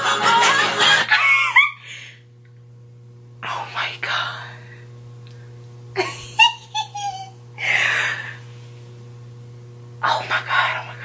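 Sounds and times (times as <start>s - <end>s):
woman squealing and giggling: 1.1s - 1.8s, 6.4s - 7.4s.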